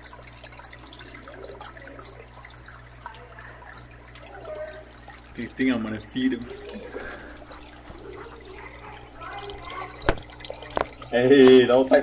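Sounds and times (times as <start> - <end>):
aquarium water trickling and bubbling: 0.0 - 12.0.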